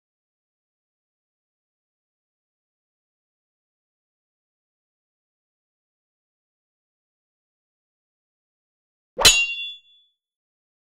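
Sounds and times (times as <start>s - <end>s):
metallic clang with ringing: 9.2s - 10.0s.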